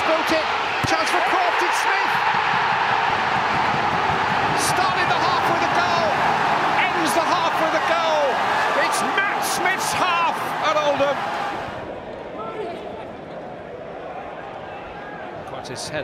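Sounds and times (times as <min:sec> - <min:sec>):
stadium crowd roaring and cheering: 0:00.0 - 0:16.0.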